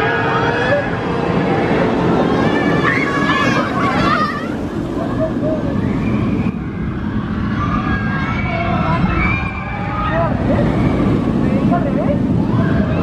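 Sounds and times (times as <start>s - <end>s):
people's voices: 0.0s - 13.0s
roller coaster rumbling on track: 0.0s - 13.0s.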